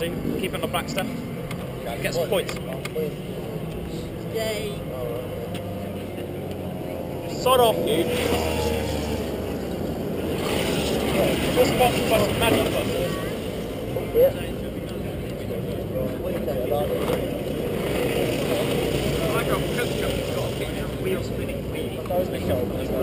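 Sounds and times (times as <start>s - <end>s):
kart engines idling: 0.0s - 23.0s.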